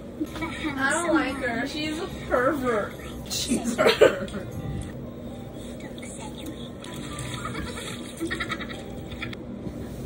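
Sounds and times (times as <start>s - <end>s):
high-pitched giggling: 6.8s - 9.4s.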